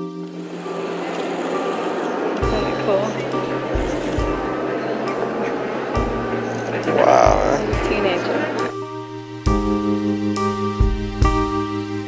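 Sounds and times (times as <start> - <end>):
noisy ambience with faint tones: 0.0 - 8.8
synthesizer chords: 0.0 - 11.6.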